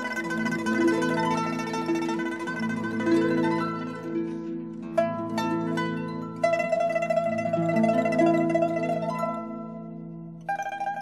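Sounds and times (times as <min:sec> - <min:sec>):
pipa playing slow melody: 0:00.0 - 0:11.0.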